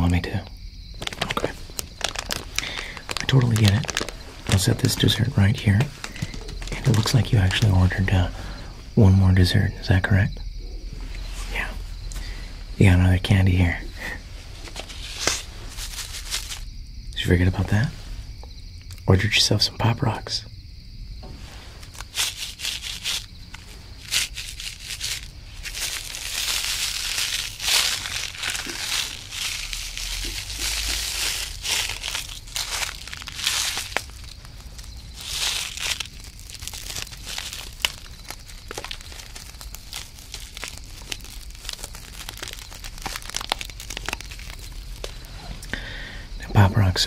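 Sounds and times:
candy packet crinkling: 0.3 - 8.4, 14.0 - 16.7, 21.8 - 45.8.

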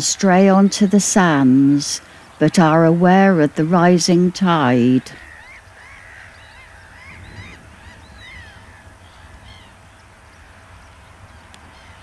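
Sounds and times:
flock of birds calling: 0.0 - 12.0.

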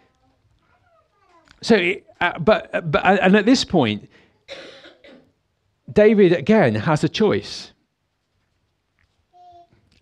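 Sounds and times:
person speaking: 1.5 - 4.1
person coughing: 4.5 - 5.4.

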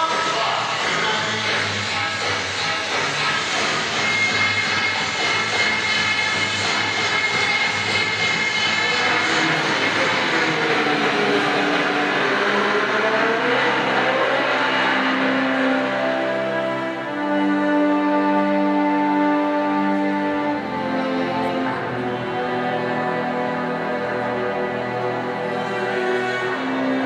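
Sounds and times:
music: 0.0 - 27.0
racing car engine over loudspeakers: 0.0 - 27.0.

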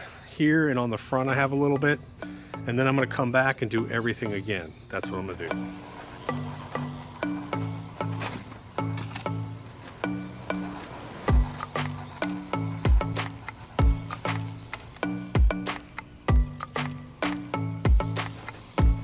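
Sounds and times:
background music with stepping notes: 1.3 - 19.0.

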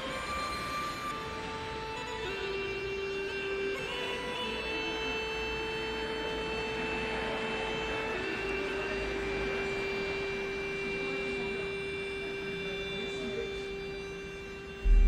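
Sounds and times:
music of long held notes: 0.0 - 15.0.

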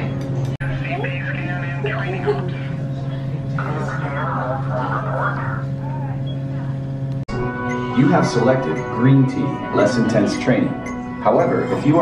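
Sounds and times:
low machine hum: 0.0 - 12.0
people murmuring: 0.6 - 6.9.

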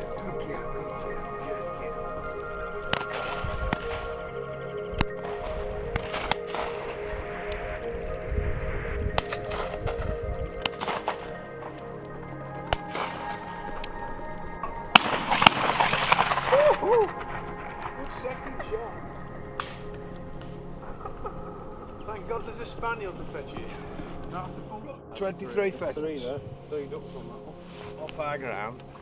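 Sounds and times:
background music: 0.0 - 29.0
shotgun shots: 14.9 - 18.0.

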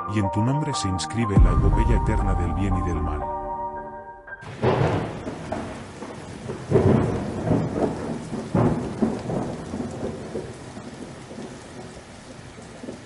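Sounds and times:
thunder rumbling: 1.4 - 3.7, 4.4 - 13.0
steady rain: 4.4 - 13.0.

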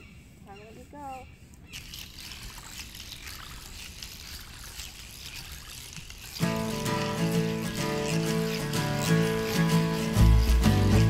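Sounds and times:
water splashing and trickling: 1.4 - 11.0
guitar music: 6.4 - 11.0.

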